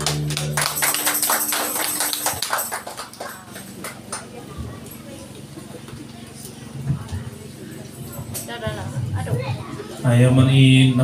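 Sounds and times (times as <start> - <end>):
small group hand clapping: 0.0 - 4.5
voices talking: 3.1 - 11.0.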